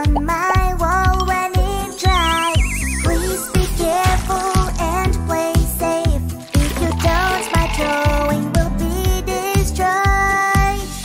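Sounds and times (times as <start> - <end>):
bouncy children's song: 0.0 - 11.0
cartoon falling whistle: 2.0 - 3.6.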